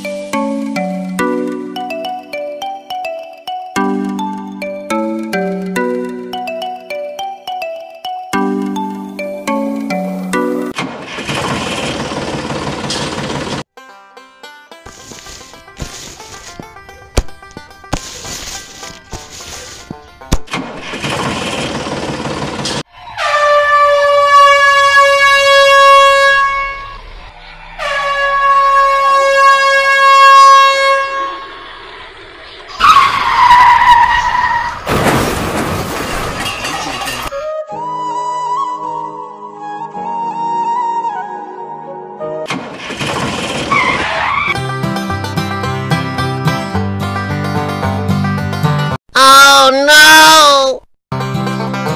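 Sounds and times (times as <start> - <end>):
music: 0.0 - 10.8, 13.8 - 20.3, 37.3 - 42.5, 44.6 - 49.0, 51.1 - 51.9
train horn blasts: 23.1 - 31.7
rushing noise: 26.7 - 29.0, 30.9 - 37.2.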